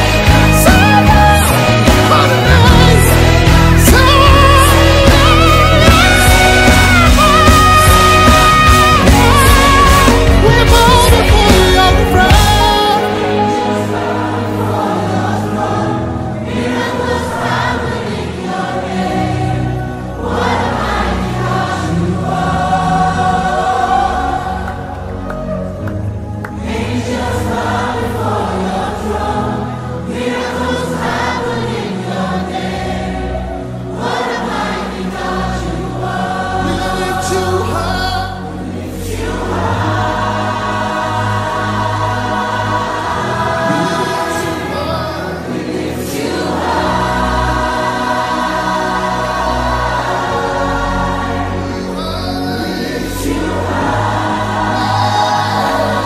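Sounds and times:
choir singing gospel: 0.0 - 56.0
sustained instrumental backing: 0.0 - 56.0.

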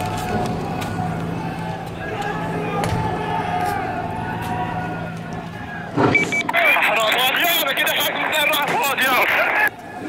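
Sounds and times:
people shouting: 0.0 - 6.0
vehicle running hum: 0.0 - 10.0
short high beeps: 6.1 - 6.6.

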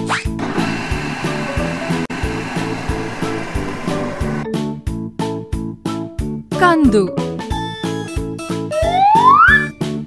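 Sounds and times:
steady whirring hiss: 0.4 - 4.4.

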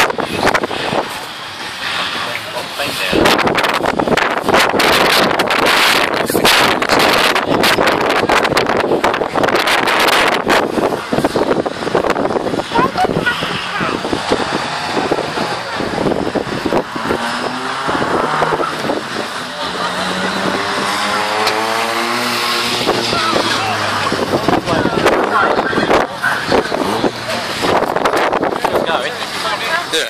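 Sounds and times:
racing car engine accelerating: 0.0 - 29.9.

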